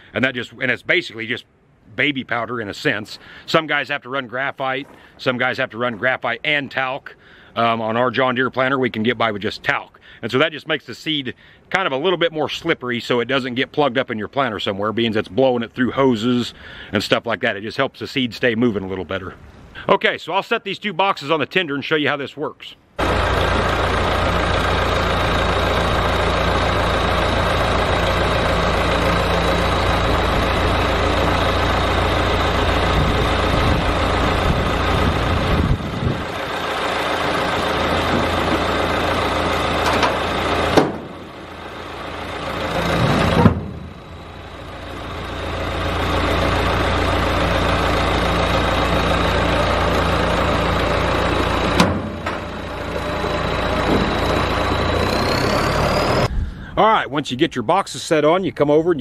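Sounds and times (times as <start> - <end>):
tractor diesel engine running: 23.0 - 57.3.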